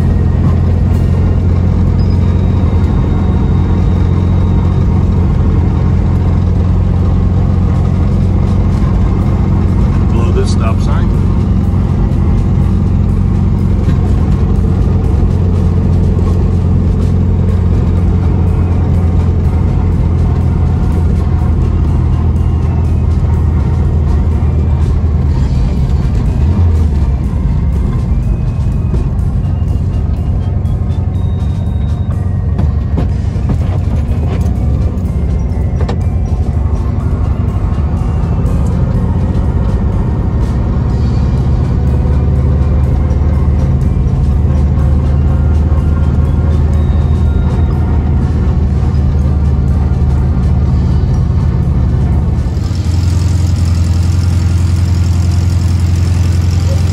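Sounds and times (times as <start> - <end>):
car engine running: 0.0 - 56.9.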